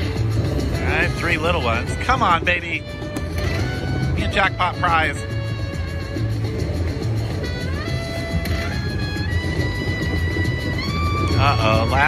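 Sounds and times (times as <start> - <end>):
low casino hum: 0.0 - 12.0
slot machine electronic music: 0.0 - 12.0.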